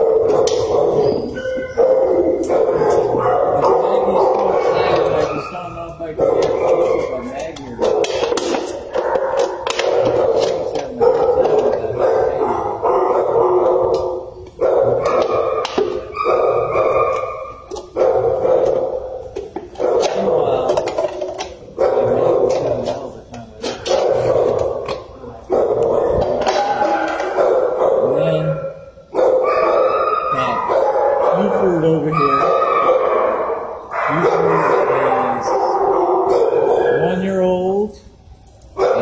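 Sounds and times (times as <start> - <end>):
dogs barking and howling: 0.0 - 39.0.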